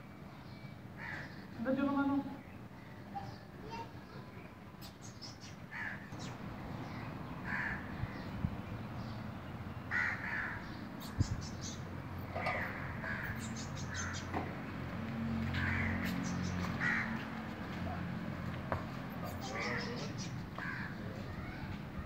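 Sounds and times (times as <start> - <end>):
crows cawing: 1.0 - 1.4, 5.7 - 6.2, 7.4 - 8.2, 9.9 - 10.8, 12.3 - 14.5, 15.4 - 17.6, 19.4 - 21.7.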